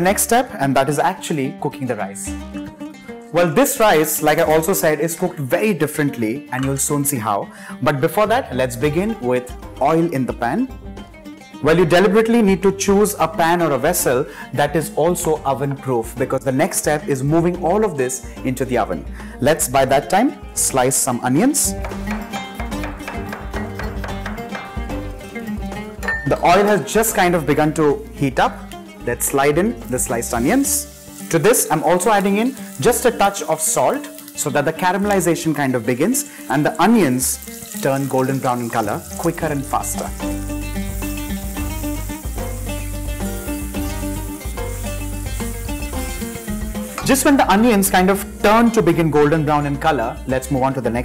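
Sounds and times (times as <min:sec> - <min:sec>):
background music with bass line: 0:00.0 - 0:05.2, 0:05.9 - 0:51.0
plucked acoustic guitar melody: 0:02.4 - 0:03.3, 0:21.7 - 0:30.3, 0:39.2 - 0:50.4
onions sizzling in hot oil: 0:28.6 - 0:49.4.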